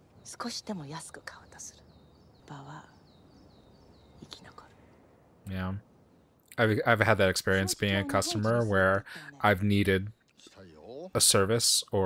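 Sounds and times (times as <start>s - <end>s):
woman speaking quietly: 7.6s - 9.4s.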